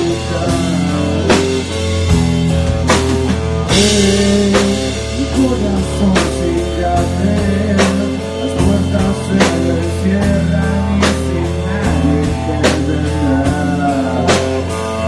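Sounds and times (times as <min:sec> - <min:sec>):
rock band playing live: 0:00.0 - 0:15.0.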